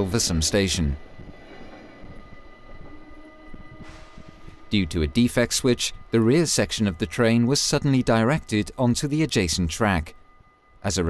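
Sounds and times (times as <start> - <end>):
train rumbling past: 0.0 - 10.8.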